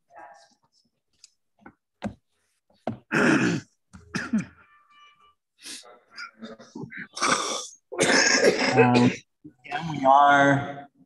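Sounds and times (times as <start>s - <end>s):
person clearing throat: 3.0s - 4.6s, 6.4s - 9.3s.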